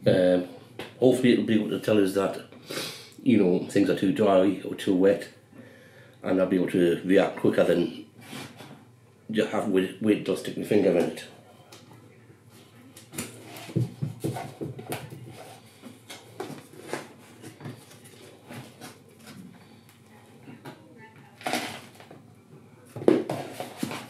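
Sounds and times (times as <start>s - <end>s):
plastic pots knocking and scraping: 13.2s - 19.4s, 22.9s - 24.0s.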